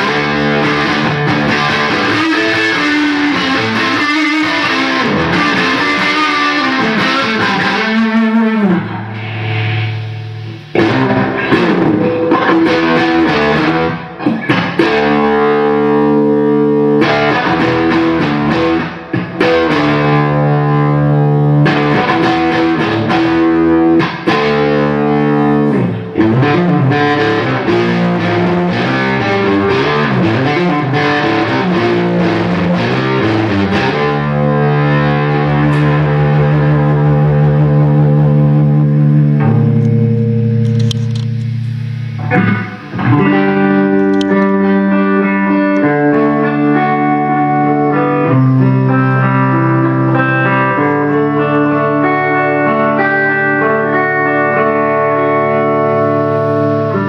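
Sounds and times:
distorted electric guitar: 0:00.0 - 0:57.0.

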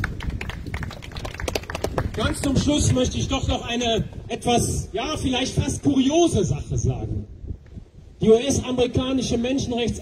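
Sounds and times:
crowd handclaps: 0:00.0 - 0:03.1.

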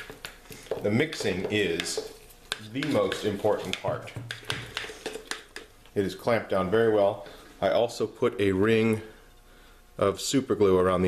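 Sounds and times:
stir stick scraping glass jar: 0:00.0 - 0:05.6.

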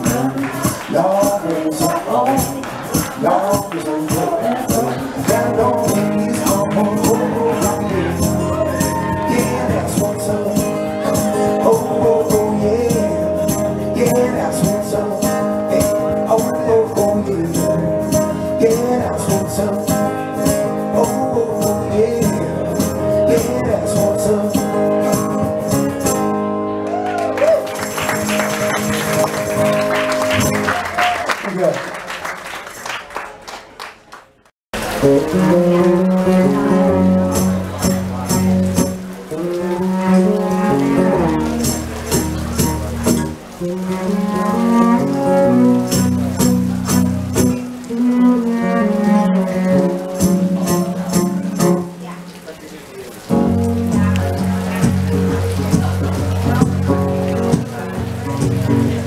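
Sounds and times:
audience clapping: 0:00.0 - 0:09.6, 0:26.8 - 0:36.4
live band playing: 0:00.0 - 0:33.0, 0:34.8 - 0:59.0
rain on a tent canopy: 0:00.0 - 0:33.9, 0:34.7 - 0:59.0
cello and acoustic guitar: 0:04.9 - 0:21.0, 0:35.0 - 0:52.4.

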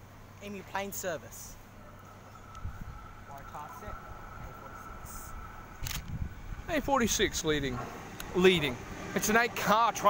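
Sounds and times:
distant voices: 0:00.0 - 0:10.0
electric train approaching: 0:01.6 - 0:10.0.

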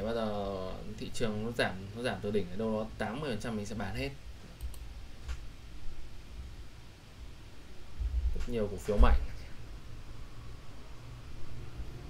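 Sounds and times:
faint room noise: 0:00.0 - 0:12.0
computer mouse clicks: 0:04.4 - 0:05.5
soft low thumps: 0:08.0 - 0:08.4.

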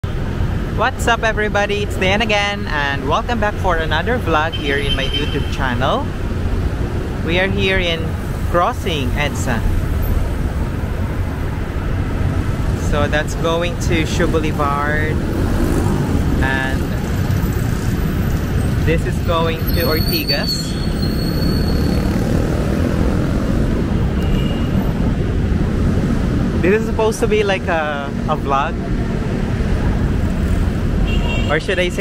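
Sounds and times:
low traffic rumble: 0:00.0 - 0:32.0
cars passing close by: 0:03.2 - 0:32.0.

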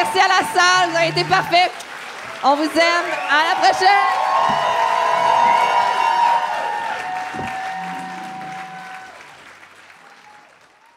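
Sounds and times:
audience applauding: 0:00.0 - 0:10.9
music playing: 0:07.2 - 0:09.8.

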